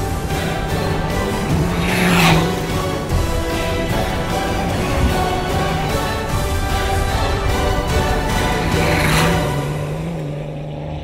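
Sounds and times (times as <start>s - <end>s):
car engine droning: 0.0s - 11.0s
rally car passing at speed: 0.0s - 11.0s.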